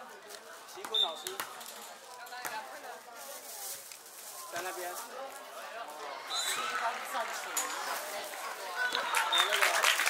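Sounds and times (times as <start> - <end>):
chatter of people: 0.0 - 10.0.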